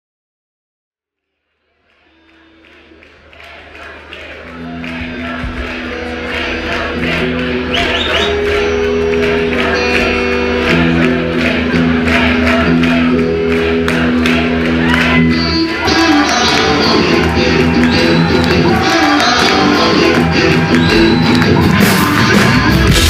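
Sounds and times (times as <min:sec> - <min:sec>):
live rock band playing: 0:04.6 - 0:23.0.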